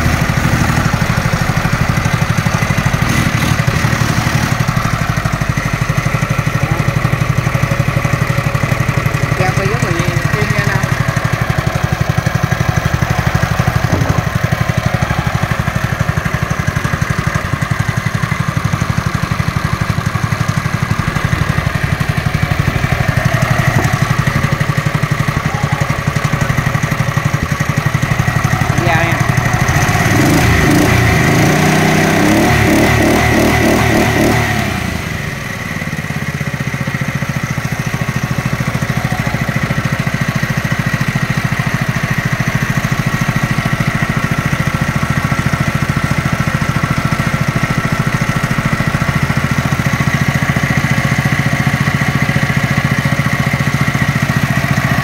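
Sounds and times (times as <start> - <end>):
engine running: 0.0 - 55.0.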